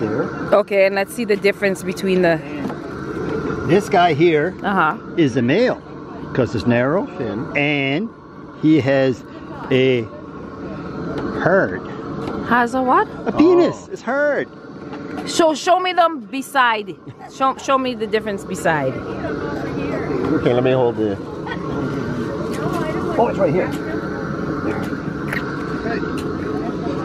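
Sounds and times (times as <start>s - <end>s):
people talking: 0.0s - 2.7s, 3.7s - 5.8s, 6.4s - 10.1s, 12.5s - 14.5s, 15.3s - 27.0s
low outdoor background noise: 0.0s - 27.0s.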